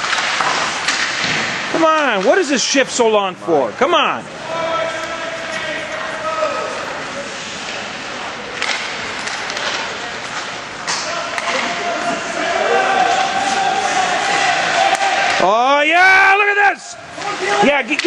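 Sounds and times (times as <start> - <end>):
sharp clacks of hockey sticks: 0.0 - 1.4, 8.5 - 11.8, 17.2 - 18.0
spectators' voices: 1.7 - 18.0
crowd shouting: 11.1 - 17.8.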